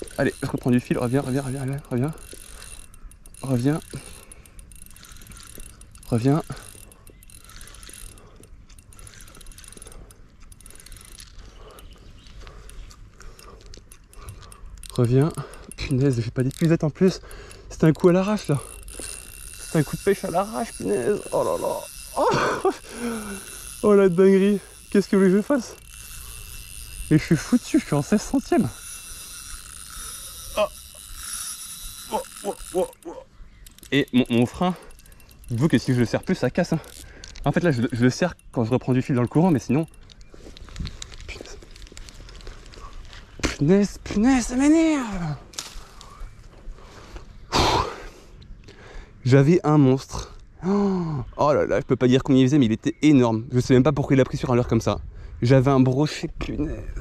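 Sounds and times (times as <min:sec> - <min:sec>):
fishing reel clicking: 0:00.0 - 0:46.3.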